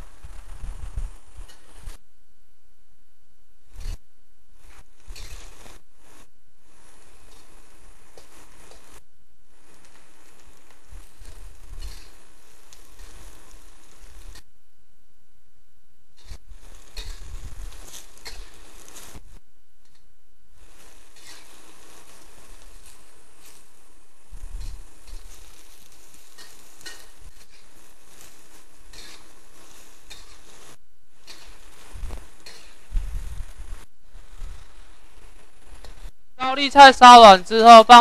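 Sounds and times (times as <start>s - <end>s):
cabbage sizzling: 0.0s - 2.0s, 3.7s - 4.0s, 4.6s - 14.5s, 16.2s - 38.0s
spatula scraping a wok: 0.4s - 2.0s, 4.6s - 5.8s, 6.6s - 14.5s, 16.2s - 19.2s, 20.6s - 36.1s.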